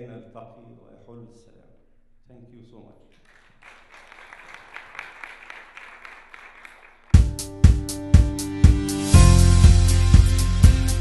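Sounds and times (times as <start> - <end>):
audience applauding: 3.2 - 7.3.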